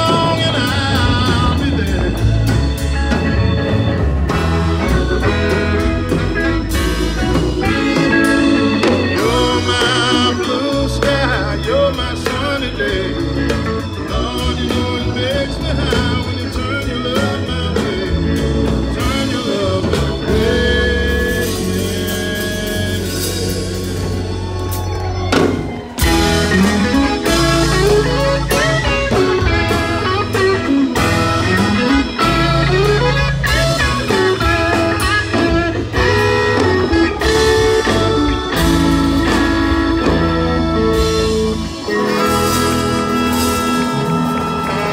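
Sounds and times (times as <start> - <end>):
live blues band playing: 0.0 - 44.9.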